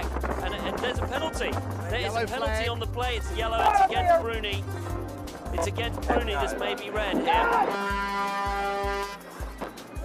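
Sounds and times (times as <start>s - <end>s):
background music with steady beat: 0.0s - 10.0s
long horn blast: 7.3s - 9.3s.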